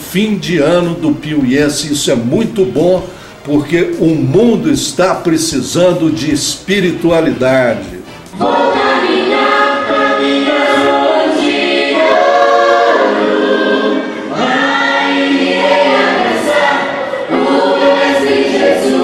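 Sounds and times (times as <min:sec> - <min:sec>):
children's choir singing: 0:08.3 - 0:19.0.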